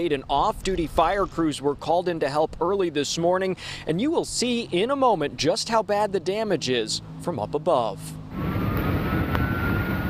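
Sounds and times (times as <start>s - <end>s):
building fire rumbling: 0.0s - 5.7s, 8.3s - 10.0s.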